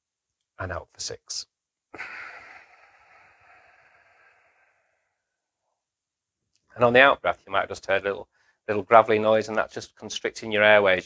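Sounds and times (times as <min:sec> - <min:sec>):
gravelly out-breath through nose: 0:02.0 - 0:05.2.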